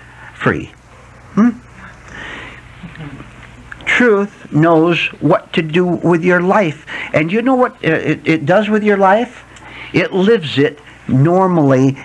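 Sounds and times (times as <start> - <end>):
soft breathy hiss: 0.0 - 7.8, 8.8 - 12.0
low recording hum: 0.0 - 12.0
person saying hmm: 1.3 - 3.7.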